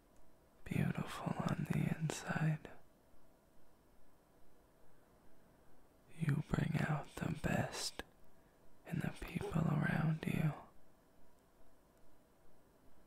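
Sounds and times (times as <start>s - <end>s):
man whispering: 0.6s - 2.8s, 6.1s - 8.1s, 8.8s - 10.8s.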